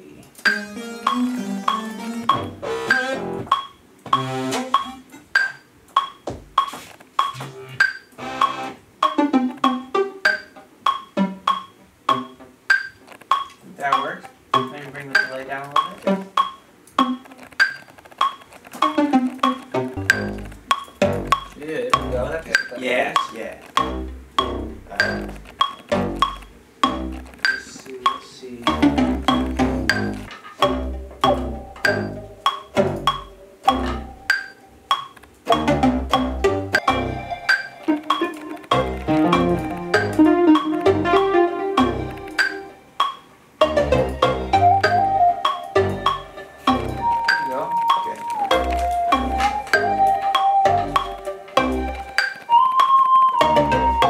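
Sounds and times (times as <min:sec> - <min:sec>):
keyboard melody: 0:00.0 - 0:05.2, 0:08.2 - 0:12.4, 0:28.7 - 0:54.0
hip-hop drum beat: 0:00.5 - 0:12.4, 0:13.3 - 0:17.2, 0:18.8 - 0:37.4, 0:38.1 - 0:52.0.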